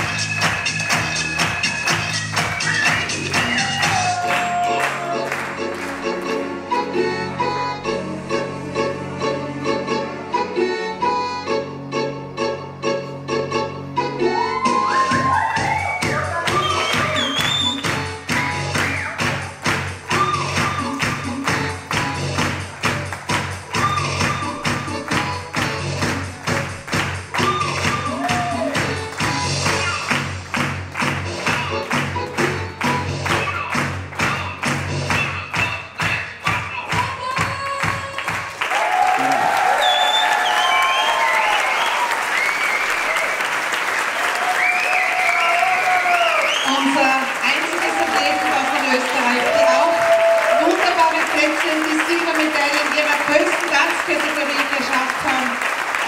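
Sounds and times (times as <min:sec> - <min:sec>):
audience applause and cheering: 0:00.0 - 0:06.9, 0:14.2 - 0:56.0
latin dance music: 0:00.0 - 0:43.2, 0:43.9 - 0:56.0.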